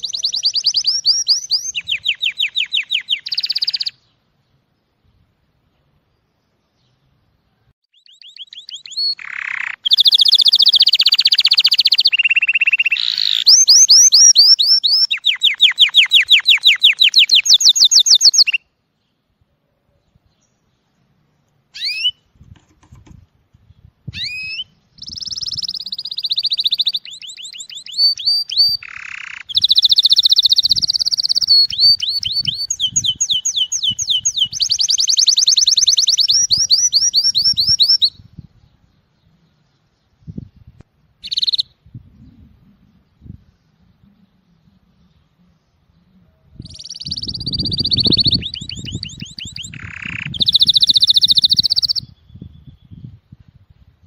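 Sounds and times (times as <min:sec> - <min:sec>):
canary singing trills: 0:00.0 - 0:04.2, 0:07.9 - 0:18.8, 0:21.7 - 0:23.0, 0:23.8 - 0:53.3.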